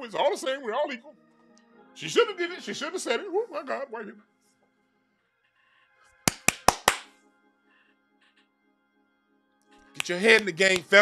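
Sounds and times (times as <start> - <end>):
faint background music: 0.0 - 11.0
sharp hand claps: 6.3 - 7.2, 10.0 - 11.0.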